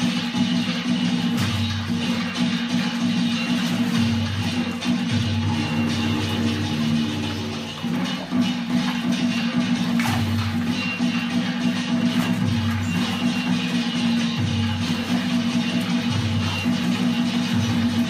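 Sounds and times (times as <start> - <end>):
puppet show music with bass notes: 0.0 - 18.0
puppet splashing in water: 0.0 - 18.0.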